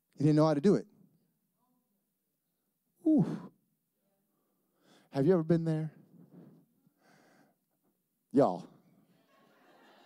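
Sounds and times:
man saying ooh: 3.0 - 3.5.

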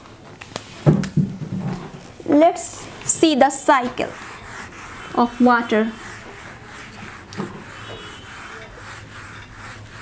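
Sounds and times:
eraser rubbing on whiteboard: 2.6 - 10.0.

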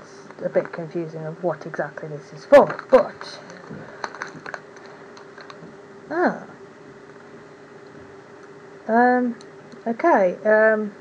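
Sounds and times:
foil packet crinkling: 2.5 - 5.7.

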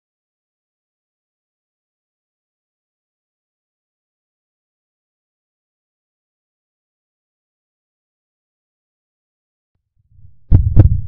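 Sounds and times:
faint low rumble: 10.0 - 11.0
heartbeat thumps: 10.1 - 11.0.

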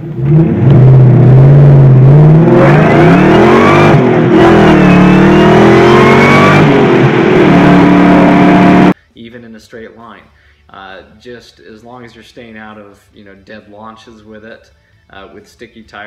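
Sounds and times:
car engine accelerating: 0.0 - 9.0.

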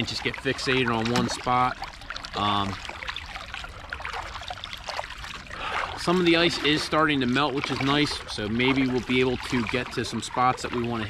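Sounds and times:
paddle splashing in water: 0.0 - 11.0
water dripping: 0.0 - 11.0.

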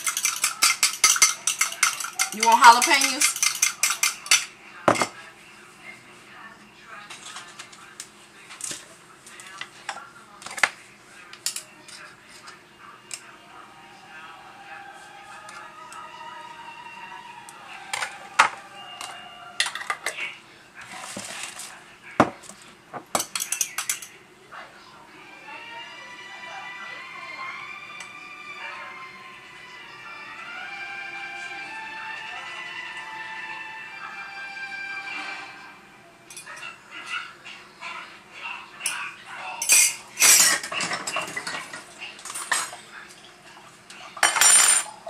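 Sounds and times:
metal cutlery clinking on glass: 0.0 - 5.2, 17.9 - 20.3, 23.1 - 24.2, 36.3 - 36.8, 38.8 - 42.8, 44.2 - 45.0
faint voices: 0.0 - 45.0.

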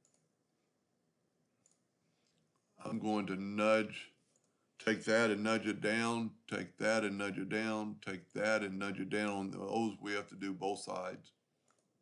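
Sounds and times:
faint computer mouse clicks: 11.6 - 11.9.

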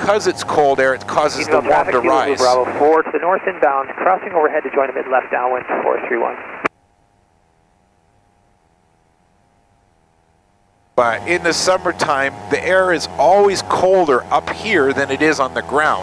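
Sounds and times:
faint steady hum: 0.0 - 14.2
talking over headset intercom: 1.1 - 6.6.

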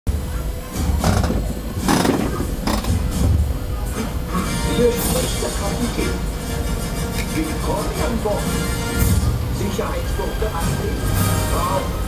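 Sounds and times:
low rumble: 0.1 - 11.0
voices: 0.2 - 8.9, 9.5 - 12.0
fairground music: 0.6 - 12.0.

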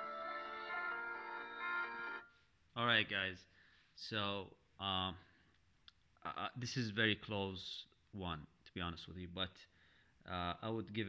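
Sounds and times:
music with sustained chords: 0.0 - 2.3.

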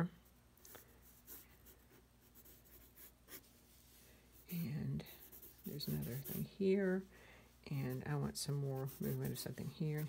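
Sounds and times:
pencil scratching on paper: 1.0 - 3.5, 4.4 - 6.8, 7.8 - 10.0.

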